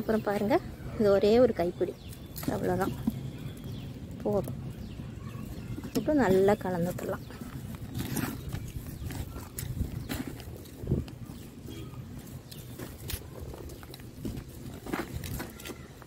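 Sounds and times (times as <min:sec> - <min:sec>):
trowel scraping dry soil: 0:05.9 - 0:16.0.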